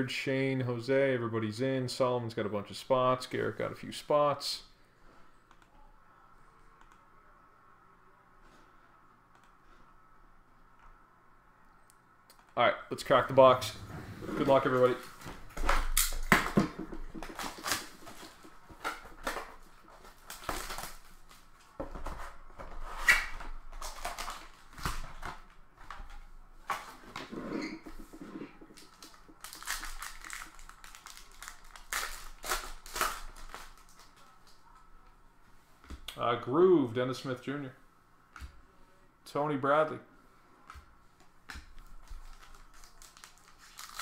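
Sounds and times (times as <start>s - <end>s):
foil packs crinkling and tearing: 17.2s - 19.5s, 28.7s - 34.2s, 42.1s - 44.0s.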